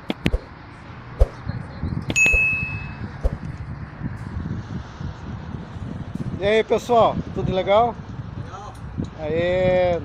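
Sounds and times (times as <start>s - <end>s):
bright bell ding: 2.2s - 3.0s.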